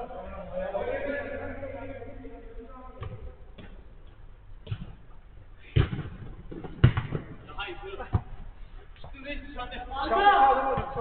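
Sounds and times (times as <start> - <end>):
football kick thuds: 5.7 - 7.4.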